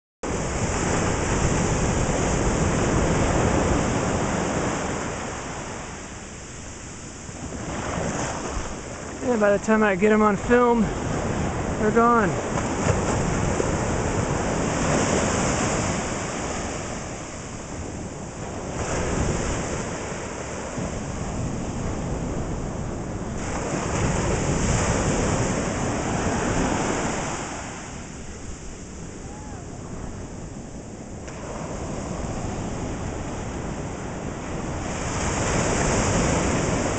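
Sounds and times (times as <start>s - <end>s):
ocean surf washing onto beach: 0.2s - 36.9s
wind buffeting microphone: 0.2s - 36.9s.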